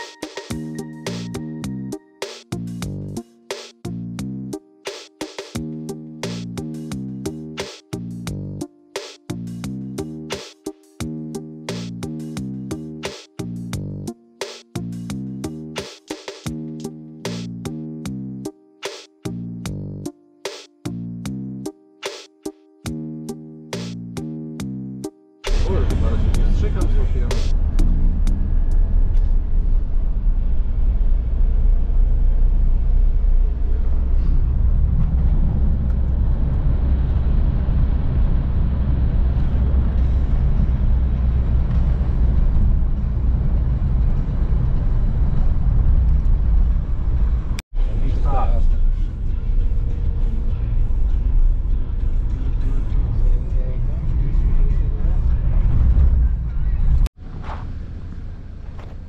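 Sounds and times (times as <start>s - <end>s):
road and wind noise in car: 25.6s - 59.0s.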